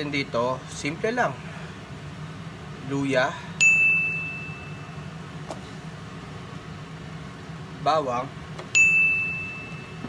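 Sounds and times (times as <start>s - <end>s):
steady low hum: 0.0s - 10.0s
high chime ding: 3.6s - 4.9s, 8.8s - 10.0s.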